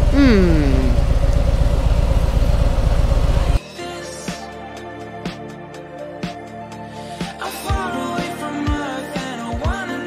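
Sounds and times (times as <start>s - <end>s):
motorcycle engine running: 0.0s - 3.6s.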